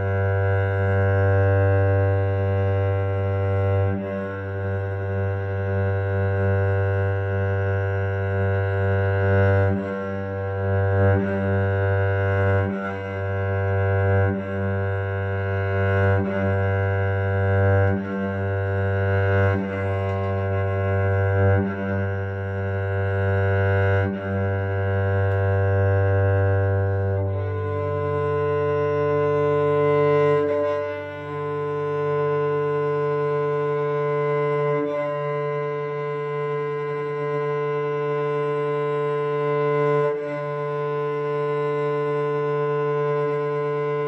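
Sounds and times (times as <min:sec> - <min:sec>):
cello bowing low note: 0:00.0 - 0:44.0.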